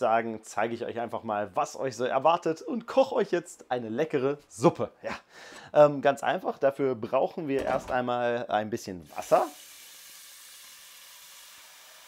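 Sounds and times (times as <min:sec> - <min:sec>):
tap water filling a steel pot: 0:09.1 - 0:12.0.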